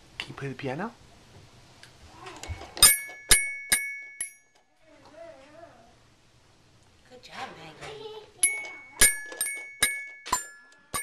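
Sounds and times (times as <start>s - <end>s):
toy xylophone notes: 8.4s - 11.0s.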